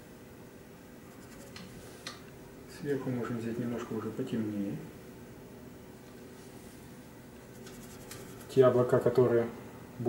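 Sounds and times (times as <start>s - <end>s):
low steady hum: 0.0s - 10.0s
paintbrush scratching on cardboard: 1.1s - 1.6s, 7.5s - 8.6s.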